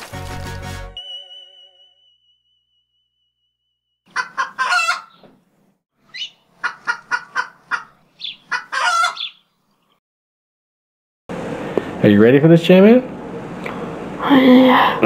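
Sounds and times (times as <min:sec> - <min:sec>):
bird calling: 0:04.1 - 0:05.3, 0:06.0 - 0:09.5.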